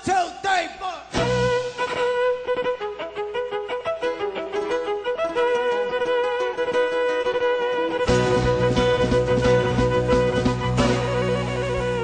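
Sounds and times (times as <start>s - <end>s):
solo violin bowed: 1.5s - 12.0s.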